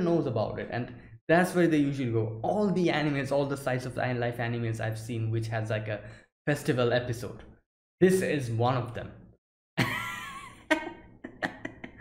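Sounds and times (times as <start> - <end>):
man laughing: 9.8 - 12.0.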